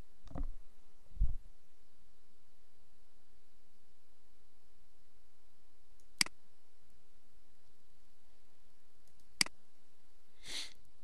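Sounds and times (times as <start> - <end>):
computer mouse click: 6.0 - 6.4, 9.0 - 9.6
short sniff: 10.4 - 10.8.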